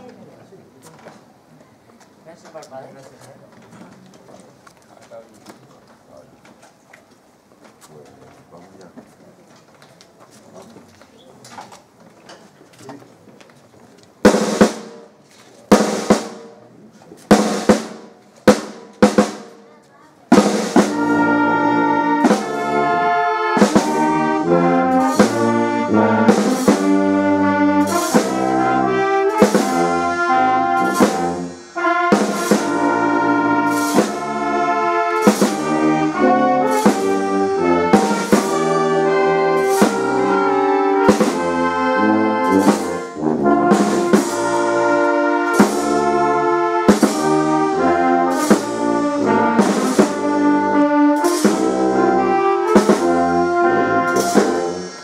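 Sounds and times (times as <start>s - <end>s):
brass band playing a march: 14.2s - 16.6s, 17.3s - 19.6s, 20.3s - 55.0s
drum strokes: 14.2s - 16.6s, 17.2s - 19.7s, 20.3s - 55.0s.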